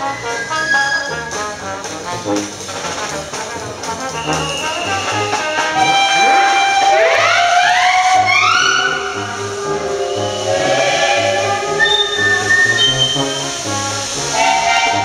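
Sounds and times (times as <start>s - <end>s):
brass band music: 0.0s - 15.0s
steam locomotive whistles: 0.0s - 15.0s.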